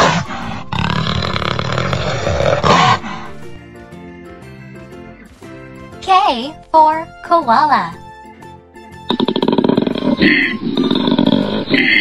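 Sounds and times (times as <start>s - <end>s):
jaguar growling: 0.0s - 3.4s, 9.1s - 12.0s
light children's music: 3.0s - 12.0s.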